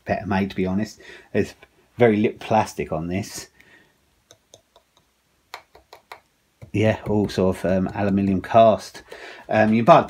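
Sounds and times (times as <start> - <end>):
hand tapping chainsaw casing: 5.6 - 8.6.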